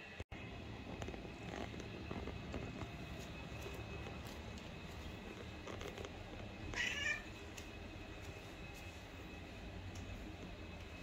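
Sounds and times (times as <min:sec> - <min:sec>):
cat meowing: 0:06.7 - 0:07.4.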